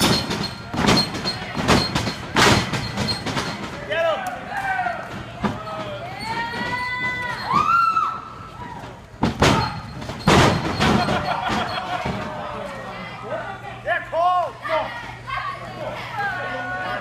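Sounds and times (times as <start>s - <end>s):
voices shouting in a hall: 3.8s - 9.9s, 12.0s - 17.0s.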